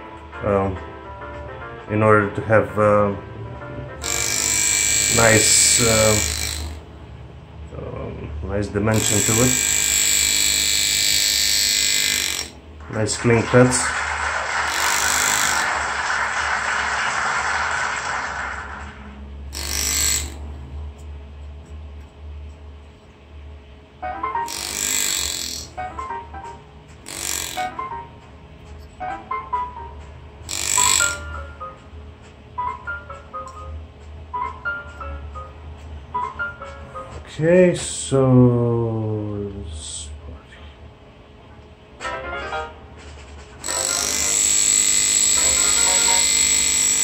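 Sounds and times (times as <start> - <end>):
jazz music: 0.0 - 6.4, 24.0 - 24.6, 25.7 - 26.9, 27.6 - 37.3, 41.9 - 44.3
engraving tool cutting metal: 4.0 - 6.9, 8.9 - 12.6, 14.6 - 15.9, 19.5 - 20.5, 24.4 - 25.8, 27.0 - 27.8, 30.5 - 31.4, 43.6 - 47.0.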